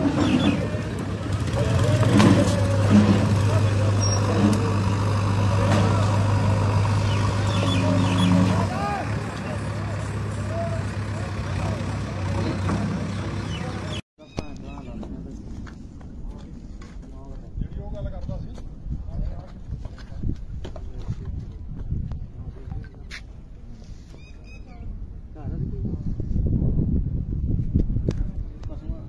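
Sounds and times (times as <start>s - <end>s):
motor engine humming: 0.0s - 14.0s
indistinct voices: 0.0s - 15.4s
outdoor noise: 0.0s - 29.0s.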